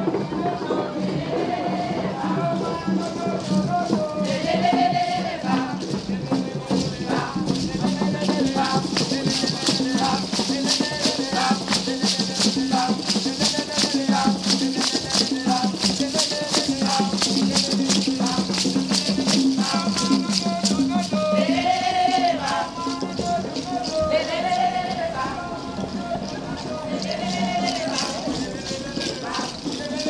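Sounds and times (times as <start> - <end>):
music: 0.0 - 30.0
rattles shaking: 2.4 - 30.0.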